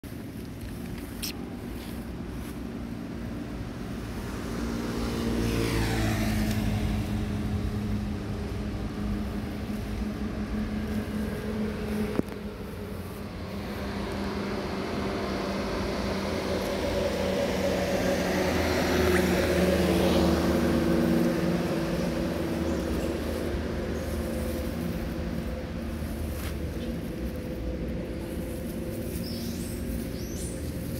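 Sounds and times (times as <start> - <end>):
vehicles passing on road: 0.0 - 30.9.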